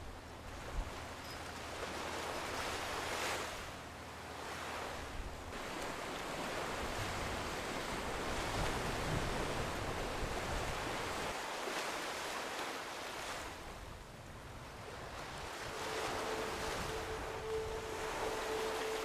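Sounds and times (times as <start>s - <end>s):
ocean surf on rocky shore: 4.3s - 19.0s
wind on microphone: 14.3s - 19.0s.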